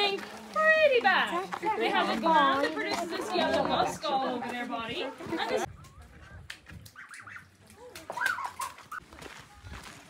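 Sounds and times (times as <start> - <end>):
young waterfowl calling: 6.2 - 9.0.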